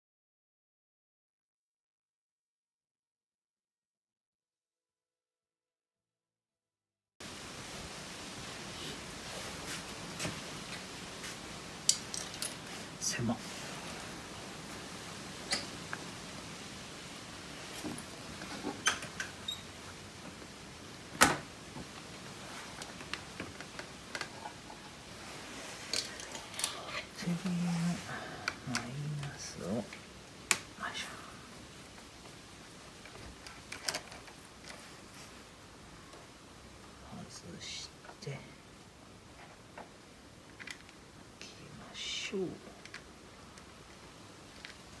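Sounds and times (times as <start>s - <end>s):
metal items clicking: 11.9s - 12.6s.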